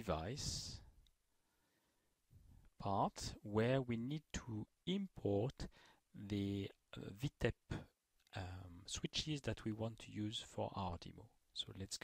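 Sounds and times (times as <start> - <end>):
man narrating: 0.0 - 0.9, 2.8 - 7.8, 8.4 - 12.0.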